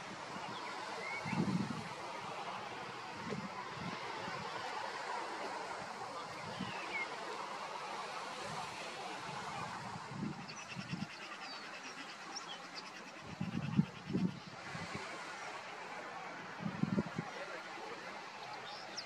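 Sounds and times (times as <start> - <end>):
steady rush of noise: 0.0 - 19.0.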